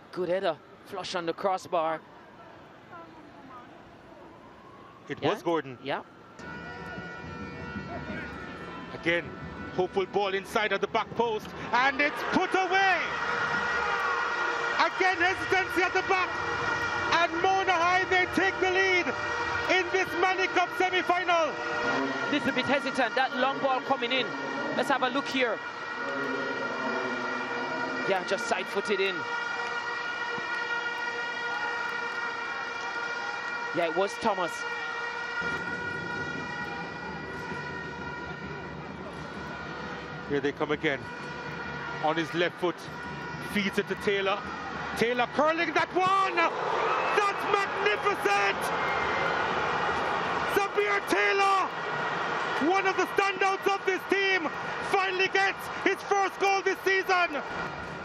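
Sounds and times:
crowd noise: 0:00.0 - 0:58.0
steady pitched drone: 0:25.7 - 0:28.2.

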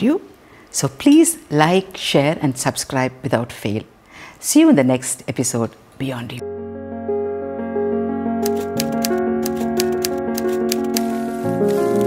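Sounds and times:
background music sustained notes: 0:06.4 - 0:12.0
typewriter keys clacking: 0:08.4 - 0:12.0.

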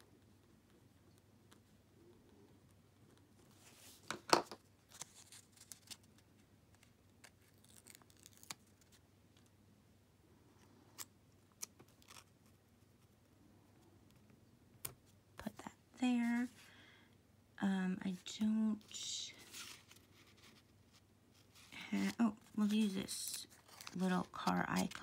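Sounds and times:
paper sticker clicks and rustles: 0:22.8 - 0:25.0.

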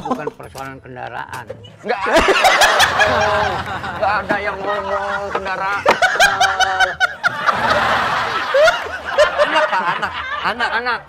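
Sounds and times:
people laughing: 0:00.0 - 0:00.5, 0:01.8 - 0:11.0.

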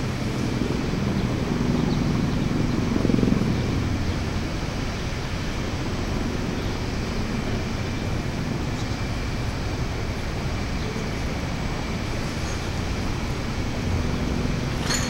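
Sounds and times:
city ambience rumble: 0:00.0 - 0:15.0.

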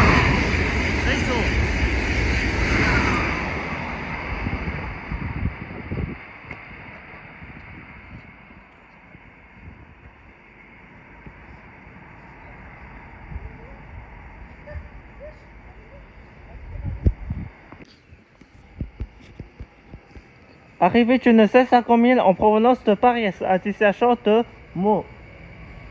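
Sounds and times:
high-speed train passing: 0:00.0 - 0:25.9.

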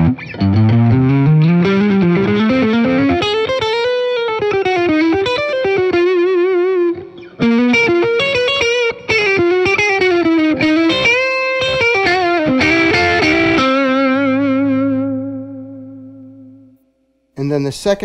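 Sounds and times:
overdriven electric guitar lead: 0:00.0 - 0:16.8.

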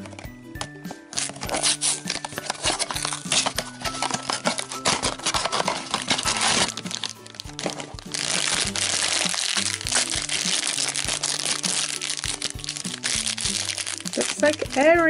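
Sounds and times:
background music: 0:00.0 - 0:15.0
foil wrapper crinkling: 0:00.9 - 0:15.0
cardboard tearing: 0:01.1 - 0:14.8.

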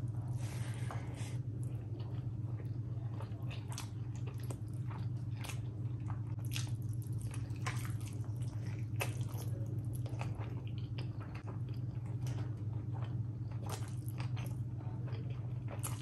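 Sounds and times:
wet chewing sounds: 0:00.6 - 0:16.0.

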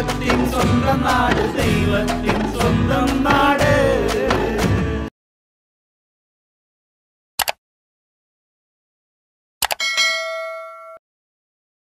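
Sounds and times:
notification bell ding: 0:09.7 - 0:11.0.

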